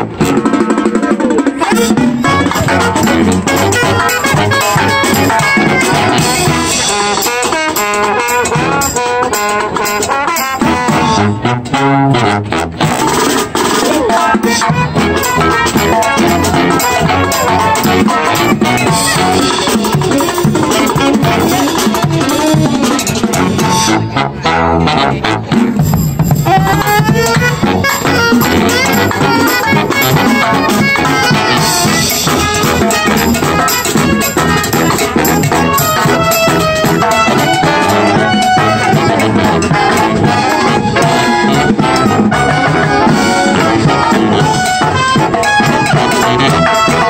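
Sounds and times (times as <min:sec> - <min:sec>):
drum beat: 0:00.0 - 0:11.2, 0:12.8 - 0:23.8, 0:25.5 - 0:47.0
marching band playing: 0:00.0 - 0:47.0.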